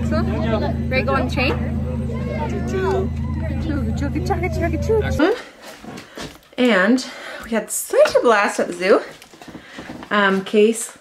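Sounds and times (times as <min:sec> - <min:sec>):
low train engine hum: 0:00.0 - 0:05.3
people's voices: 0:00.0 - 0:05.6.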